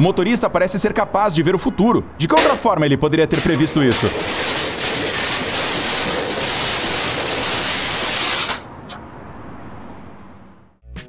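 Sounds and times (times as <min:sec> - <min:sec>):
steady rushing hiss: 0:03.4 - 0:09.0.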